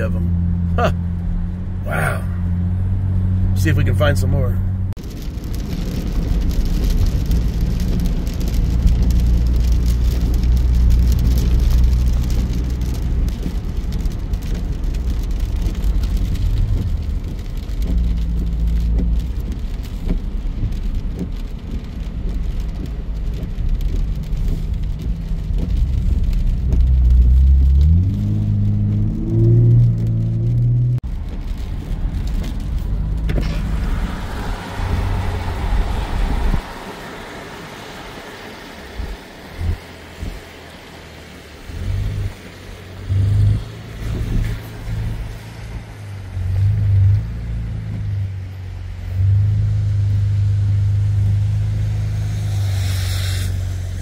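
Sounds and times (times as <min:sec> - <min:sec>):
car driving on wet road: 0:00.0 - 0:54.0
engine rumble: 0:00.0 - 0:54.0.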